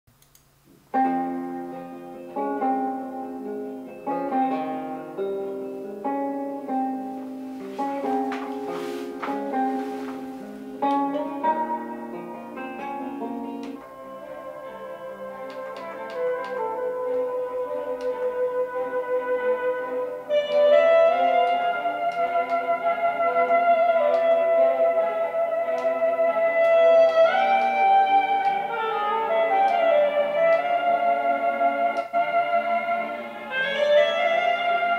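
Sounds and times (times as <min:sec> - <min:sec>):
music through small speakers: 0:00.4 - 0:34.9.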